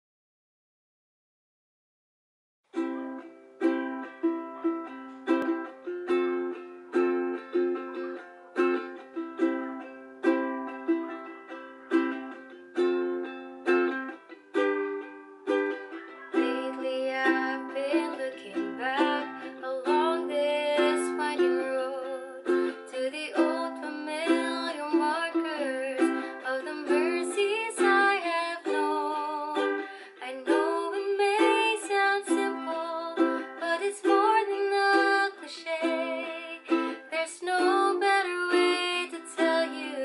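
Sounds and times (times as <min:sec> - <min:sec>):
ukulele strumming: 0:02.7 - 0:40.0
person singing: 0:14.6 - 0:40.0.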